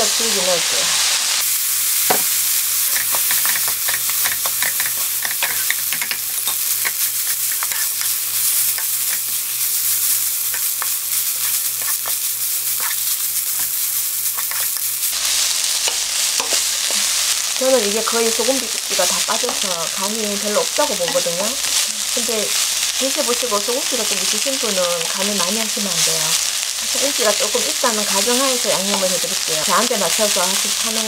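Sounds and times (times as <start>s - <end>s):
vegetables sizzling in a wok: 0.0s - 31.0s
spatula clicking and scraping: 2.8s - 15.0s, 15.8s - 17.2s.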